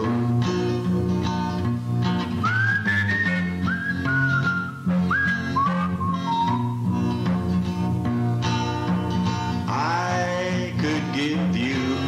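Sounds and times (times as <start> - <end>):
country guitar and bass: 0.0 - 12.0
whistled melody: 2.3 - 7.1.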